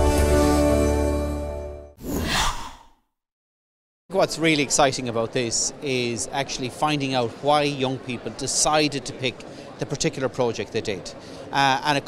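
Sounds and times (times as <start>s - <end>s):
breathy whoosh: 2.0s - 3.0s.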